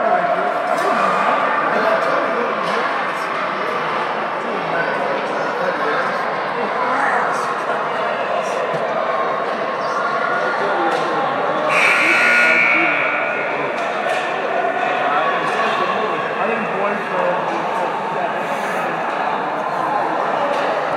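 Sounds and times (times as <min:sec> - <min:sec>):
voices chattering and calling: 0:00.0 - 0:20.9
loud high tone: 0:11.7 - 0:14.6.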